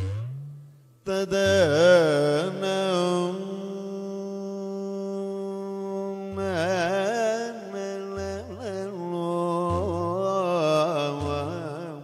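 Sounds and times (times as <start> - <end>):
man singing with sliding pitch: 1.0 - 12.0.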